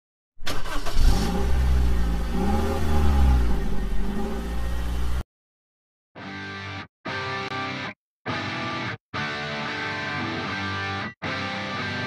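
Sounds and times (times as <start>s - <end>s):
car engine starting and revving: 0.4s - 5.2s.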